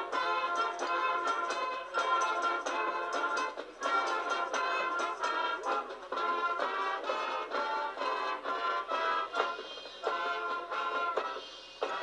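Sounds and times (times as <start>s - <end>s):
marching band playing: 0.0s - 12.0s.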